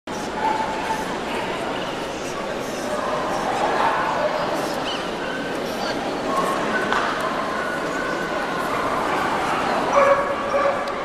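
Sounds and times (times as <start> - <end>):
crowd chatter: 0.1 - 11.0
dogs barking and yipping: 9.9 - 10.8.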